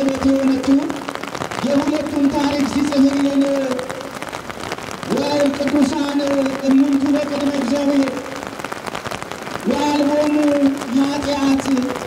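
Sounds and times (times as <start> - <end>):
man chanting over microphone: 0.0 - 4.1, 5.1 - 8.4, 9.6 - 12.0
rain pattering: 0.0 - 12.0.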